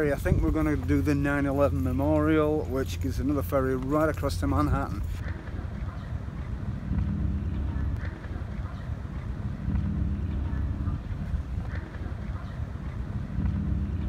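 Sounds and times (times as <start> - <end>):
low rumble of ship engines: 0.0 - 14.0
wind buffeting microphone: 0.0 - 14.0.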